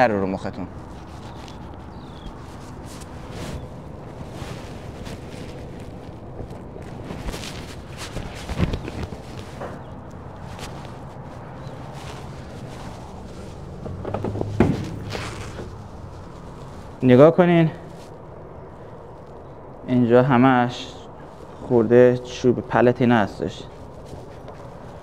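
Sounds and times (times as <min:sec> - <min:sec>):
low background hum: 0:00.0 - 0:25.0
nylon jacket rustling: 0:00.6 - 0:17.1
handling knocks: 0:12.7 - 0:15.8.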